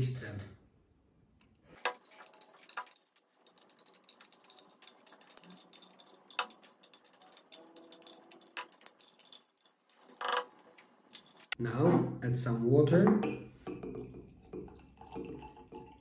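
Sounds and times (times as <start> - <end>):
metal spoon scraping glass jar: 1.8 - 11.6.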